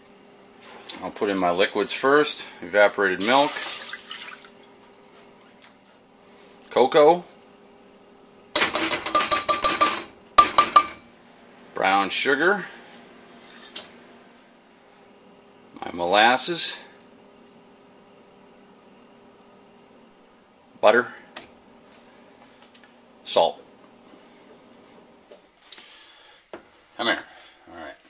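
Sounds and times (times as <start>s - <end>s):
spoon tapping metal cup: 9.1s - 11.0s.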